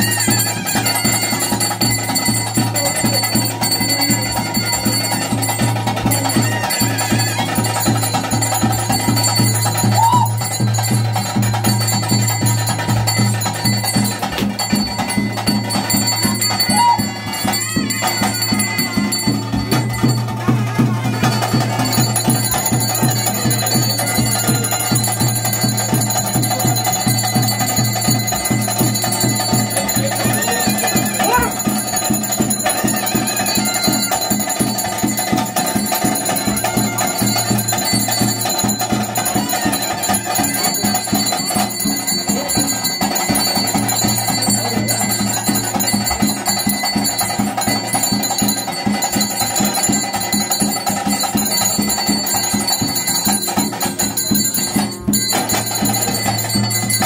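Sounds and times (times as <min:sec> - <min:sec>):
bells ringing: 0:00.0 - 0:57.0
fast steady drumming: 0:00.0 - 0:57.0.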